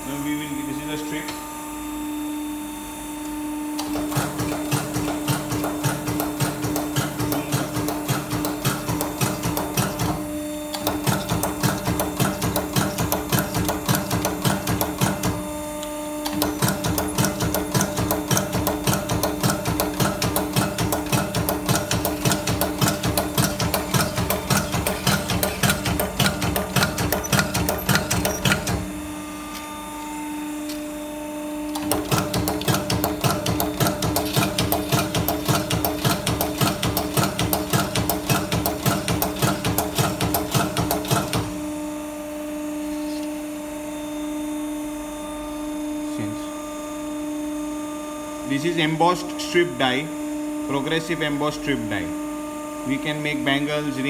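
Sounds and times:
machine hum: 0.0s - 54.0s
press punching strokes: 3.7s - 29.8s, 31.6s - 41.7s.

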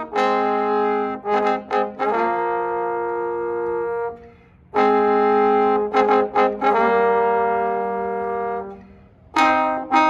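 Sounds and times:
brass duet holding long note: 0.0s - 10.0s.

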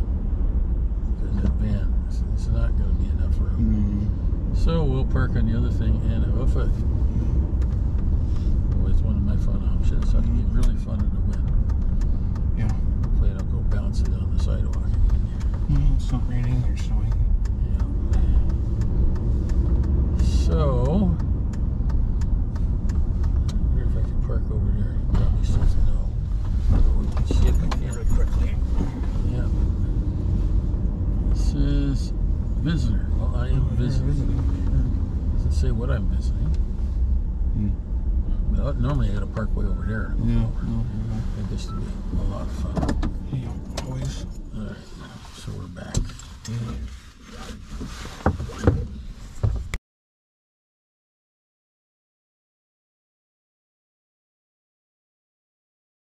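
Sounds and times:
car engine and road noise: 0.0s - 49.8s.

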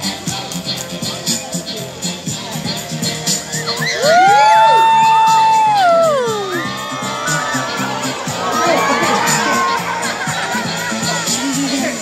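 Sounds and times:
background music with steady beat: 0.0s - 12.0s
children shrieking and cheering: 3.6s - 12.0s.

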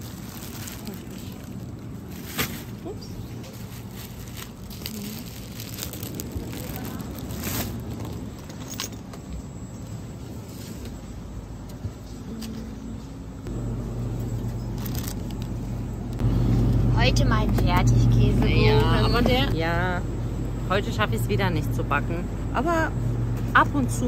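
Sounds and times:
plastic bags crinkling: 0.0s - 8.6s, 14.5s - 15.6s
steady low hum: 0.0s - 24.0s.

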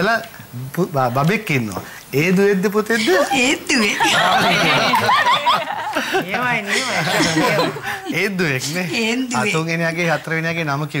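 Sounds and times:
people laughing: 3.0s - 8.8s.

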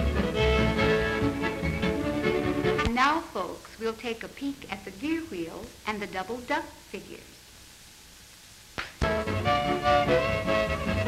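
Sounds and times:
string band square dance music: 0.0s - 2.9s, 9.0s - 11.0s
fiddle playing tune: 9.1s - 11.0s.

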